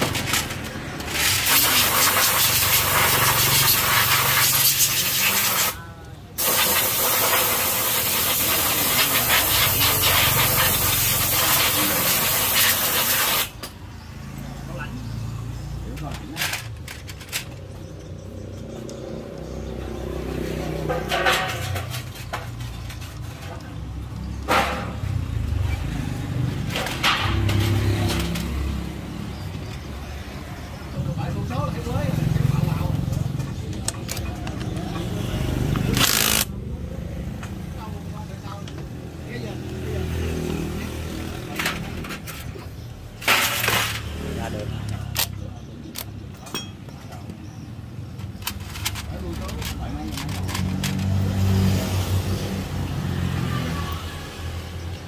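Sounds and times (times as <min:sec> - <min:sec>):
workshop noise: 0:00.0 - 0:55.0
pressurised spray hissing: 0:06.4 - 0:13.5
low voices: 0:14.4 - 0:55.0.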